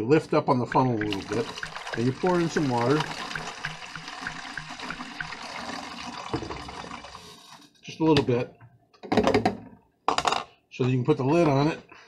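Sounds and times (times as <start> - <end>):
water pouring through funnel: 0.7 - 7.6.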